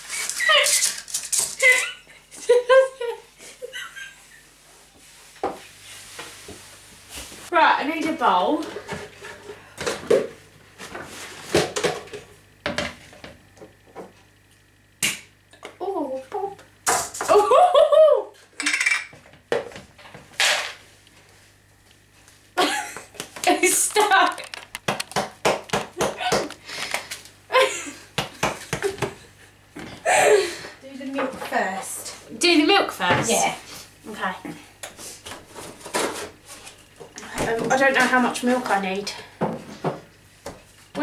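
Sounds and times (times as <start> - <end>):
woman talking: 7.5 - 8.8, 15.8 - 16.6, 23.4 - 24.5, 30.8 - 34.6, 37.2 - 39.3
kitchenware clattering: 18.6 - 19.2.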